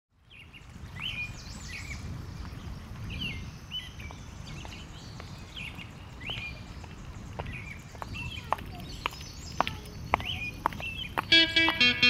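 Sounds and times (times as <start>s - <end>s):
birds chirping: 0.2s - 12.0s.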